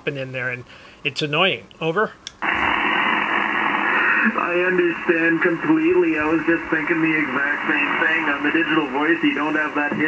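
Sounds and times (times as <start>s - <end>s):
radio speaker static hiss: 2.4s - 10.0s.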